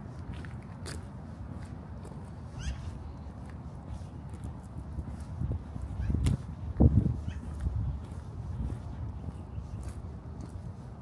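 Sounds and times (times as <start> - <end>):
footsteps on gritty sidewalk: 0.0 - 11.0
low city rumble: 0.0 - 11.0.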